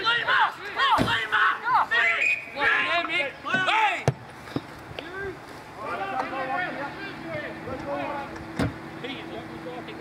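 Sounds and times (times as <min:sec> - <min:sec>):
people shouting: 0:00.0 - 0:04.1.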